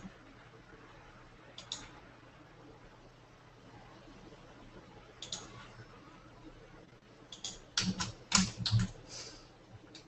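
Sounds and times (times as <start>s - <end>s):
computer keyboard typing: 1.6s - 1.9s, 5.2s - 5.5s, 7.3s - 9.0s.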